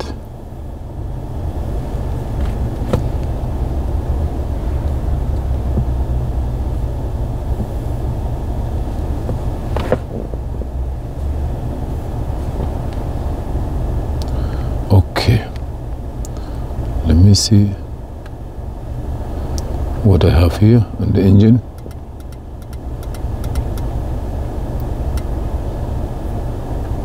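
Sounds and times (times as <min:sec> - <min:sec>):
car cabin rumble: 0:00.0 - 0:27.0.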